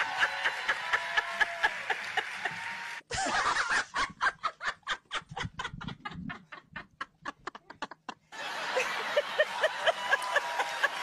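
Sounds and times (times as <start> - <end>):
woman laughing hard: 3.1 - 11.0.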